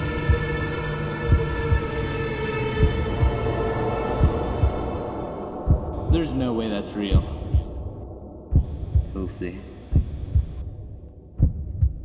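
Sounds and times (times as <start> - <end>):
heartbeat double thumps: 0.0 - 12.0
steady low hum: 0.0 - 12.0.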